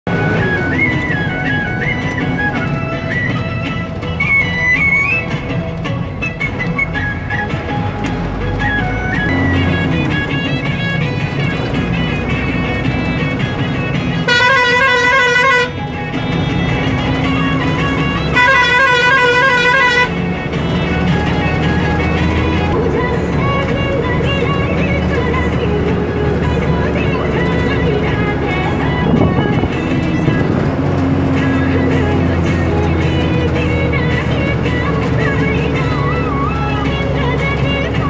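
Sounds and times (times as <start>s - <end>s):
moving vehicle rumble: 0.0s - 38.0s
music playing: 0.1s - 38.0s
warbling vehicle horn: 14.1s - 16.1s, 17.2s - 20.3s.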